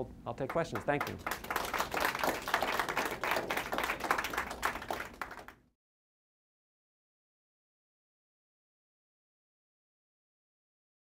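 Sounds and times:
audience applauding: 0.5s - 5.6s.

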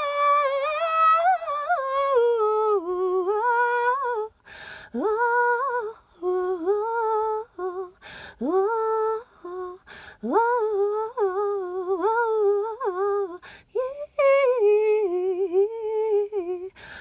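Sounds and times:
woman singing unaccompanied: 0.0s - 17.0s
singer breathing: 4.4s - 5.0s, 8.0s - 8.4s, 9.8s - 10.2s, 13.4s - 13.7s, 16.7s - 17.0s.

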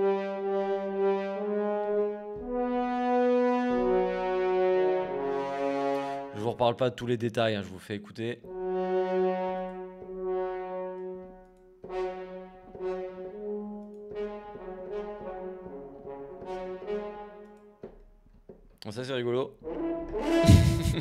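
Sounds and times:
french horn notes: 0.0s - 6.6s, 8.4s - 17.8s, 19.6s - 21.0s.

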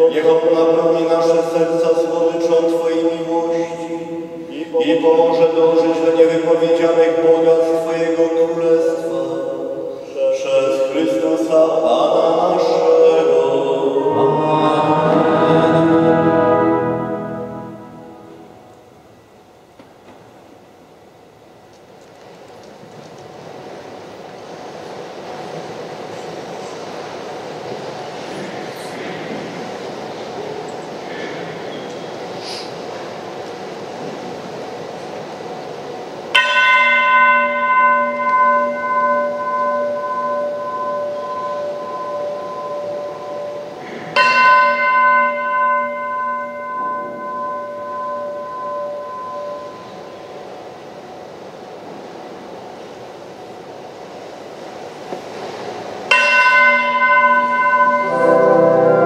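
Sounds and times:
organ playing: 12.6s - 18.8s, 37.4s - 50.6s, 57.4s - 59.0s
bell ringing: 13.9s - 18.7s, 36.4s - 50.4s, 56.1s - 59.0s.

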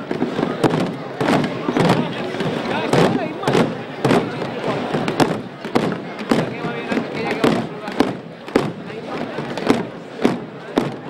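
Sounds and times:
crowd murmuring: 0.0s - 11.0s
drum beating slow march: 0.0s - 11.0s.

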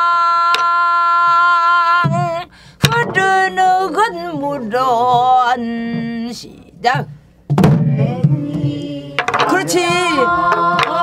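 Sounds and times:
stick striking barrel drum: 2.0s - 3.6s, 6.9s - 11.0s.

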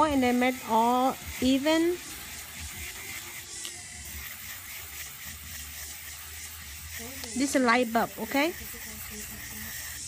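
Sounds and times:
electric nail file buffing: 0.0s - 10.0s.

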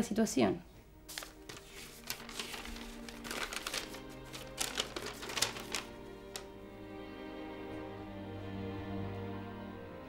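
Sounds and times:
soft background music: 0.0s - 10.0s
paper rustling and crackling: 1.1s - 6.6s.

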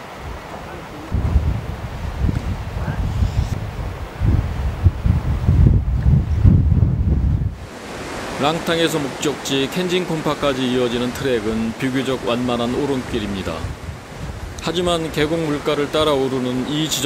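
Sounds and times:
wind buffeting microphone: 0.0s - 8.4s, 12.7s - 16.2s.

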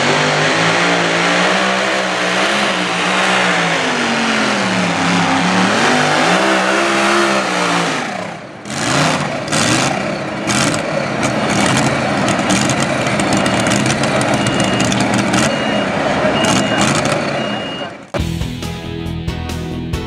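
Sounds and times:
tractor engine running at high revs: 0.0s - 18.4s.

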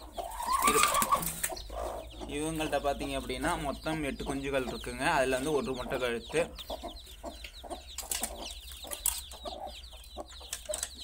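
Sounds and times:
hen call: 0.3s - 1.3s.

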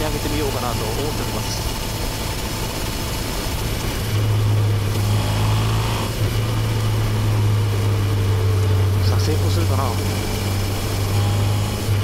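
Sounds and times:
motorcycle engine and exhaust in tunnel: 0.0s - 12.0s.

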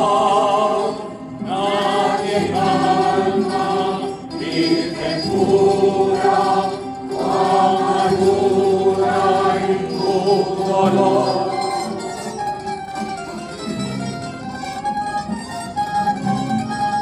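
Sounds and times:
choir singing a hymn: 0.0s - 12.5s
plucked-string ensemble: 0.0s - 17.0s.

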